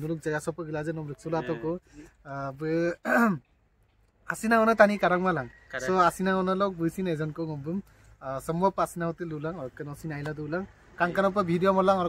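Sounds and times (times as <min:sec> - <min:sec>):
man speaking: 0:00.0 - 0:03.4, 0:04.3 - 0:12.0.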